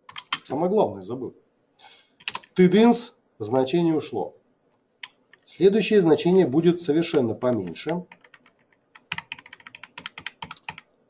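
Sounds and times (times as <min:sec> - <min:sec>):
computer keyboard typing: 0:00.0 - 0:00.5, 0:02.2 - 0:02.6, 0:07.0 - 0:10.9
person speaking: 0:02.3 - 0:04.4, 0:05.4 - 0:08.3.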